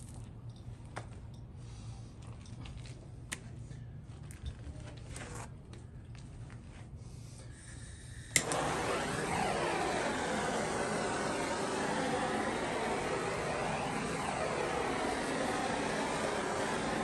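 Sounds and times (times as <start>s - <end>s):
torch flame hissing: 8.1s - 17.0s
torch igniter click: 8.3s - 17.0s.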